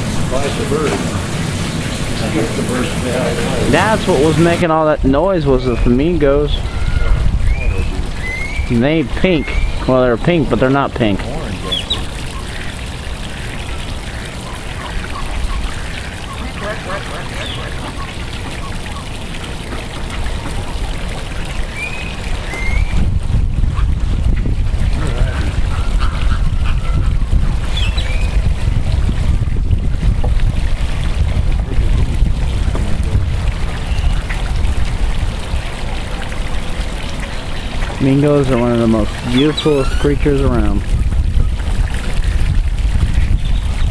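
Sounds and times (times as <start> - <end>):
wind rumble on microphone: 0.0 - 43.9
flamingos calling: 5.4 - 19.3, 25.0 - 28.4, 37.4 - 40.8.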